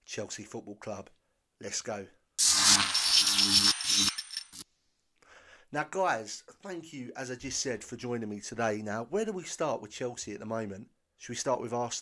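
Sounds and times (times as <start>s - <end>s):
harsh noisy burst: 2.4s - 4.6s
thin high ringing tone: 2.4s - 4.6s.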